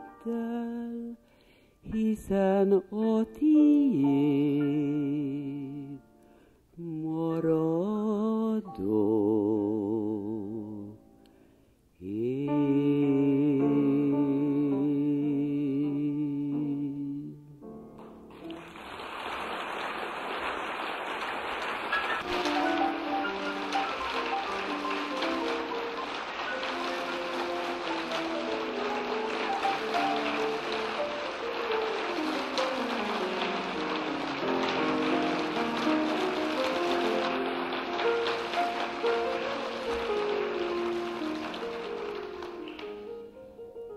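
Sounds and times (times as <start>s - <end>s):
solo piano playing: 0.0s - 1.3s, 1.9s - 6.2s, 12.1s - 43.9s
audience applauding: 18.3s - 43.2s.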